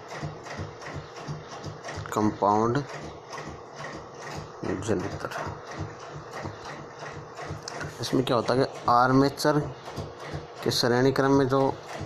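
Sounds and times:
rhythmic mechanical clicking: 0.0 - 12.0.

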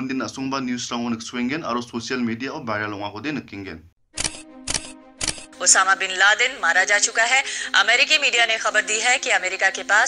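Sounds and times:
camera shutter clicks: 4.2 - 5.6.

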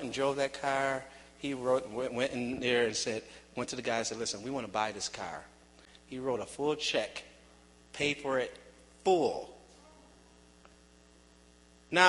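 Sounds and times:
man speaking: 0.0 - 5.5, 6.1 - 9.6
faint electrical hum: 0.0 - 12.0.

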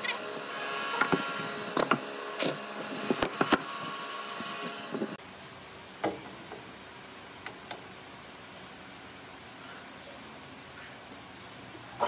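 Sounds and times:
machine hum: 0.0 - 9.4.

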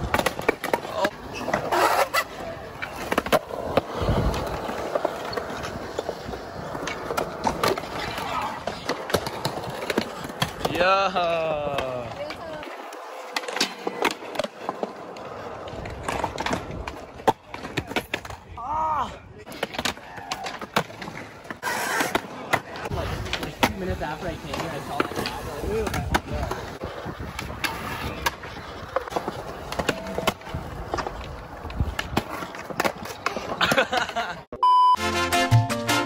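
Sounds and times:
skateboards clacking: 0.0 - 18.7, 19.4 - 34.5
skateboard wheels rolling on concrete: 0.0 - 34.5.

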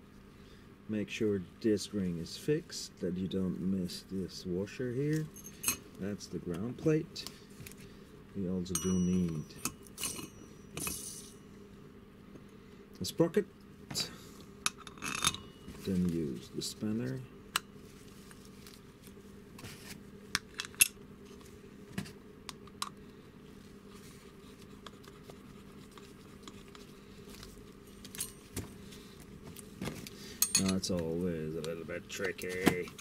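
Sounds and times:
faint steady low hum: 0.0 - 33.0
gloved hands rustling metal part: 23.8 - 33.0.

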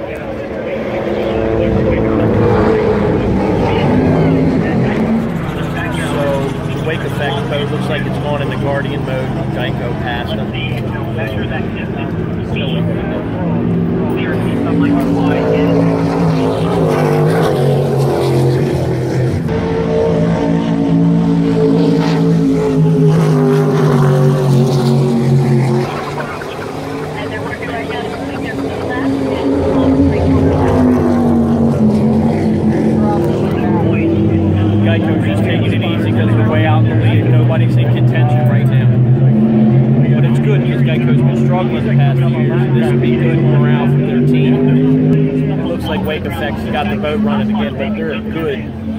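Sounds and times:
powerboat engines running hard: 0.0 - 48.9.

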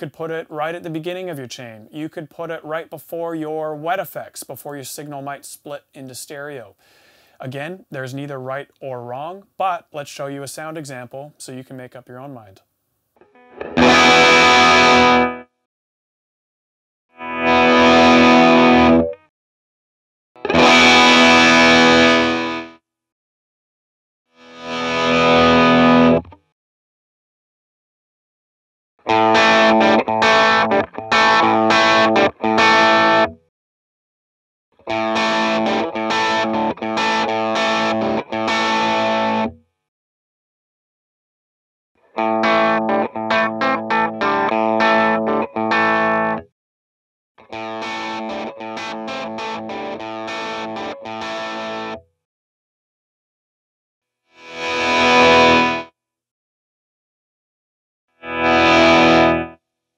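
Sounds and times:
overdriven electric guitar: 13.2 - 15.5, 17.2 - 19.3, 20.4 - 22.8, 24.4 - 26.4, 29.1 - 33.4, 34.8 - 39.6, 42.1 - 46.5, 47.4 - 52.0, 54.4 - 55.8, 58.2 - 59.6.

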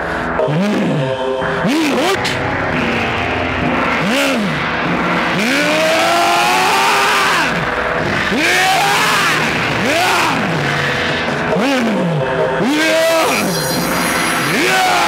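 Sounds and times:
steady drone: 0.0 - 15.0
swooping tones: 0.4 - 15.0.

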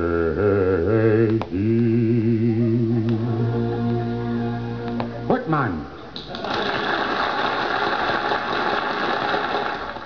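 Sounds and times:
audience applauding: 6.2 - 10.0.

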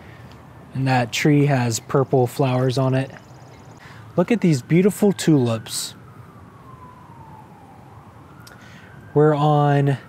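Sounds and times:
quiet street background: 0.0 - 10.0
siren wailing: 2.6 - 10.0.

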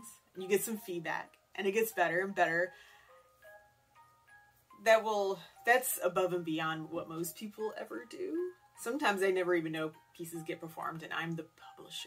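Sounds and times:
soft bell-like music notes: 0.0 - 12.0.

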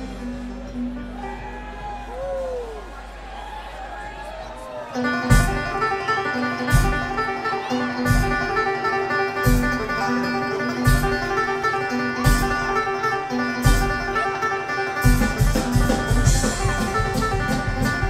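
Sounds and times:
mandolin: 0.0 - 1.9, 4.9 - 18.0
banjo: 5.0 - 18.0
acoustic guitar: 5.1 - 18.0
steady drum beat: 5.3 - 6.0, 6.7 - 7.3, 10.9 - 11.5, 12.2 - 12.9, 13.6 - 14.2, 15.0 - 18.0.

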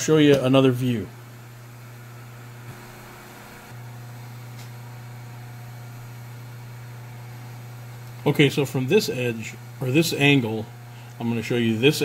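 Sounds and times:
milling machine motor humming: 0.0 - 12.0.

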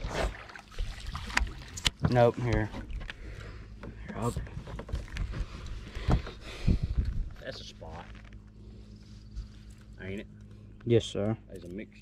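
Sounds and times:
faint steady hum: 0.1 - 12.0.

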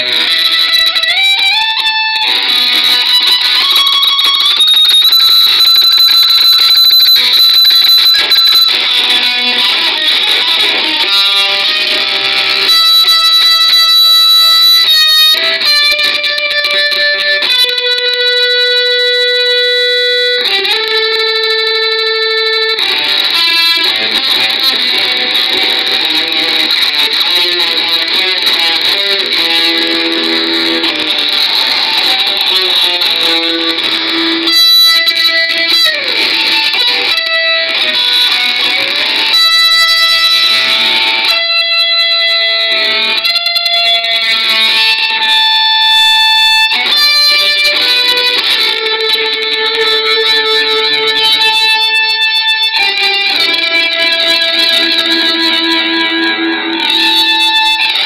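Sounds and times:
instrumental metal guitar: 0.0 - 58.0.

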